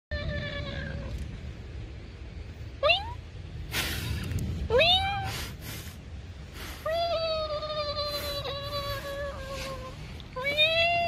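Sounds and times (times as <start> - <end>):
cat meowing: 4.7 - 5.3.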